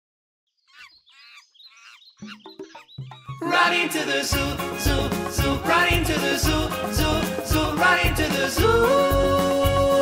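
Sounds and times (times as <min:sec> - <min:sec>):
faint bird chirping: 0:00.5 - 0:03.5.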